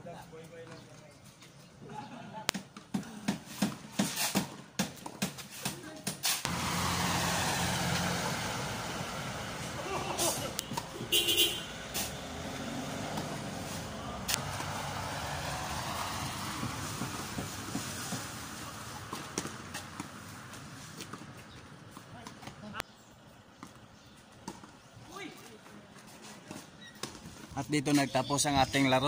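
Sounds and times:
large vehicle engine rumble: 0:06.5 - 0:22.0.

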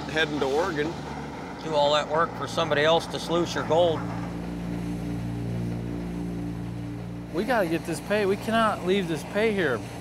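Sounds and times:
low drone of held tones: 0:00.0 - 0:10.0.

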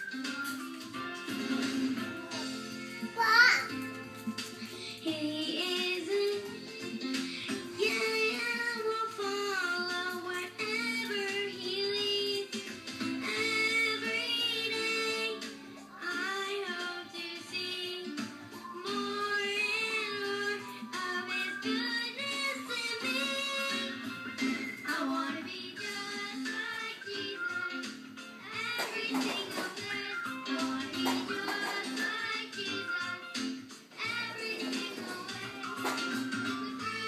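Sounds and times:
musical accompaniment: 0:00.0 - 0:37.0.

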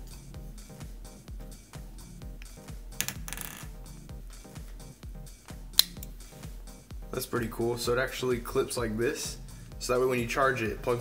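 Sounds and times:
background music with steady beat: 0:00.0 - 0:11.0
earpiece snapping onto clip: 0:05.8 - 0:06.1.

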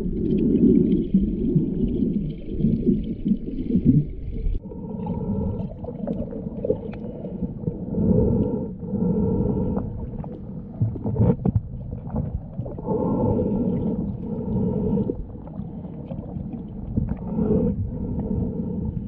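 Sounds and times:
underwater water rushing: 0:00.0 - 0:19.0.

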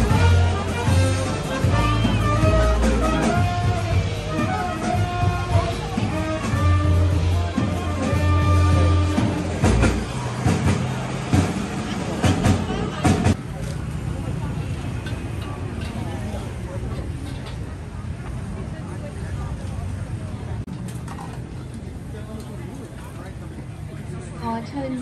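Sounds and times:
live jazz band playing: 0:00.0 - 0:11.5
crowd chatter: 0:00.0 - 0:25.0.

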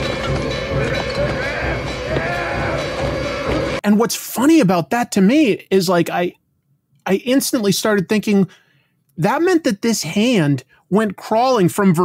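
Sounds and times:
horror film music: 0:00.0 - 0:03.8
voice crying out: 0:00.7 - 0:03.3.

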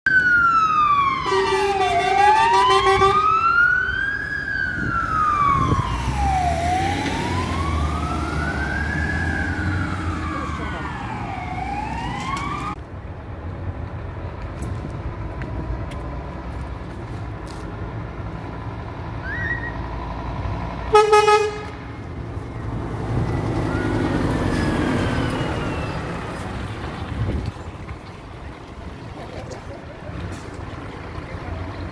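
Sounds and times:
fire engine siren wailing: 0:00.1 - 0:12.8, 0:22.4 - 0:27.0
street traffic: 0:00.1 - 0:31.9.

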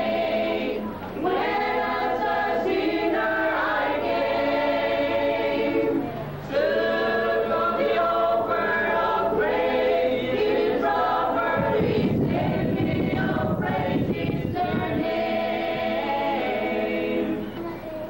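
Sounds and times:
children's choir singing: 0:00.0 - 0:18.0.

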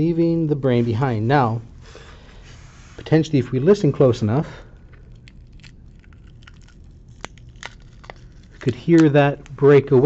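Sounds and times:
soft tissue crackles: 0:00.5 - 0:10.0.

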